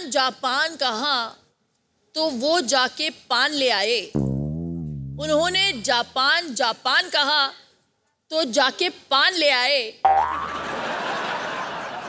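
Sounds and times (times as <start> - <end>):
cartoon boing sound effect: 4.2 - 6.2, 10.1 - 10.8.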